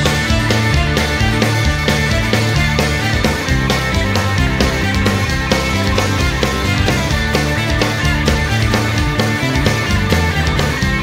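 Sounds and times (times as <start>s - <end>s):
drums keeping steady beat: 0.0s - 11.0s
rock band playing live: 0.0s - 11.0s.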